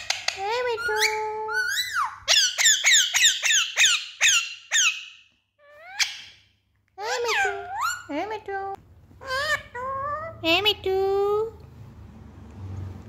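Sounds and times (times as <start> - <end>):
parakeet mimicking a word: 7.0 - 10.8.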